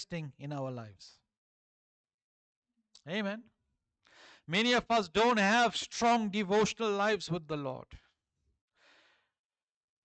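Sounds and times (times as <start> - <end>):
faint intake of breath: 4.1 - 4.5.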